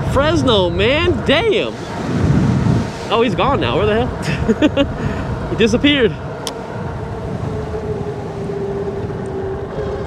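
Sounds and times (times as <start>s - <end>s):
hub motor whine: 0.0s - 10.0s
road noise: 0.0s - 10.0s
wind buffeting microphone: 0.0s - 10.0s.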